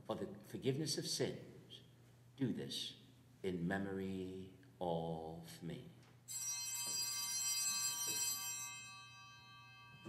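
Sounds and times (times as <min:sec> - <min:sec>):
altar bells ringing: 0:06.3 - 0:10.0.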